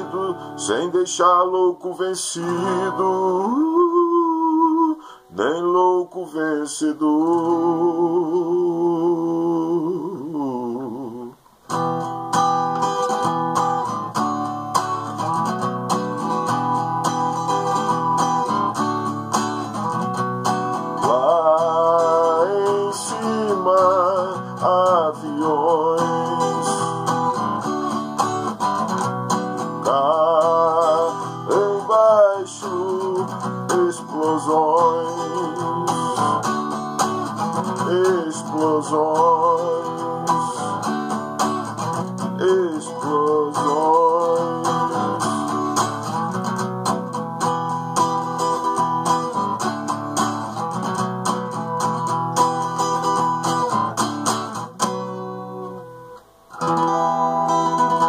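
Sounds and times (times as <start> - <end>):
man singing wordlessly: 0.0 - 11.6, 15.0 - 49.6
acoustic guitar strumming: 0.0 - 58.0.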